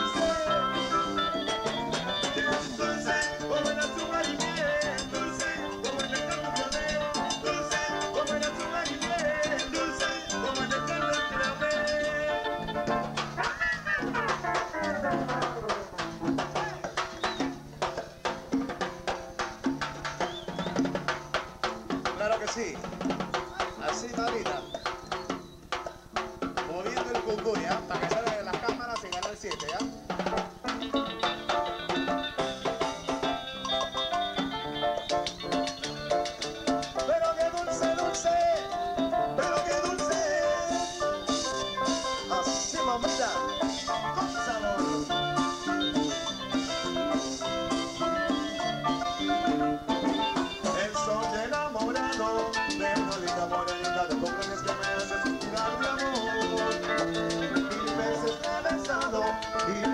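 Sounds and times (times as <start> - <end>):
bass line: 0.0 - 18.6, 30.7 - 59.9
electronic keyboard melody: 0.0 - 20.1, 29.7 - 59.9
percussion strokes: 0.0 - 59.9.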